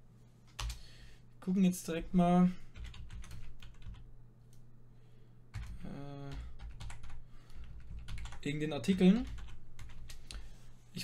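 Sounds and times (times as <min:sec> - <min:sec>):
computer keyboard typing: 0:00.5 - 0:00.8, 0:02.7 - 0:04.0, 0:05.5 - 0:10.2.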